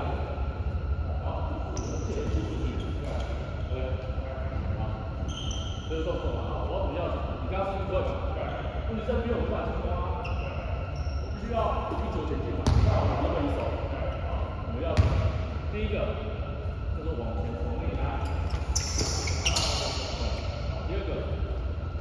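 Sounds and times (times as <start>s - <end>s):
players talking: 0.0s - 22.0s.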